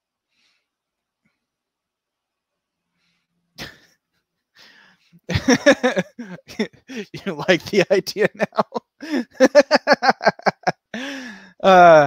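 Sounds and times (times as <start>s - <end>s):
man's sharp burst of breath: 11.0s - 11.6s.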